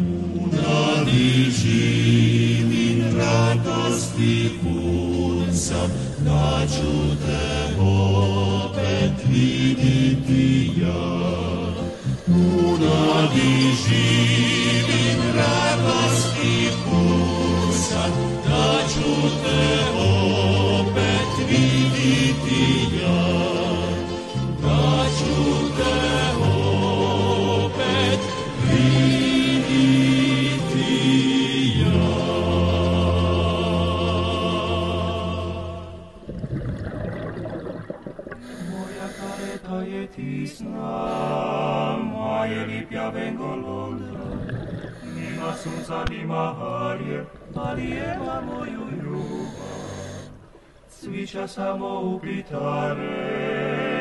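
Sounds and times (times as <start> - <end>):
low-voiced vocal group singing: 0.0 - 36.5, 38.4 - 54.0
bubbling gurgling noise: 36.1 - 38.6, 44.1 - 45.5, 47.3 - 48.7.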